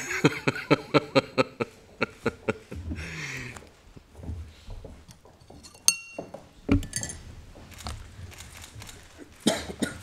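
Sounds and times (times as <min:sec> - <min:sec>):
person coughing: 0:09.4 - 0:10.0.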